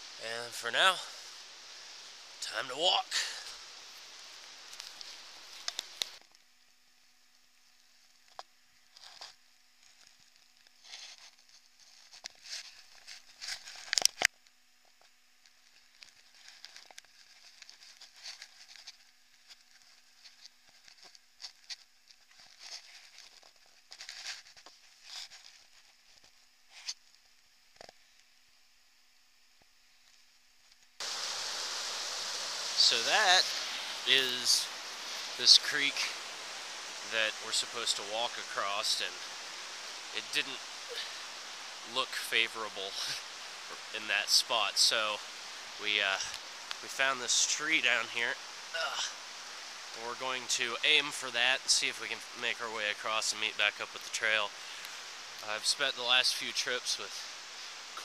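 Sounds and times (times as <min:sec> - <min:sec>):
creek water rushing: 0:00.0 - 0:06.2, 0:31.0 - 0:58.0
man's voice: 0:00.2 - 0:01.1, 0:32.8 - 0:36.2, 0:37.0 - 0:39.3
footsteps crunching through dry leaves: 0:31.0 - 0:44.0.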